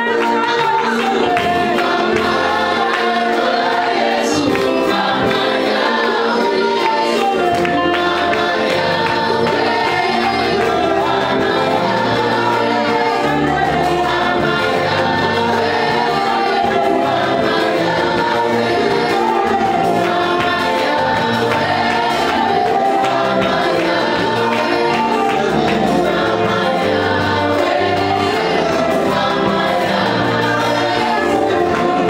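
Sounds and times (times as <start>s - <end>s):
woman singing: 0.0s - 3.3s
backing singers: 0.0s - 32.0s
band with electric guitar: 0.0s - 32.0s.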